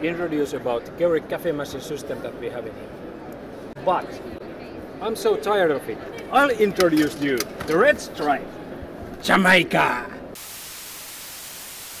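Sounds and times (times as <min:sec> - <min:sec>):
tv static hiss: 0:10.4 - 0:12.0.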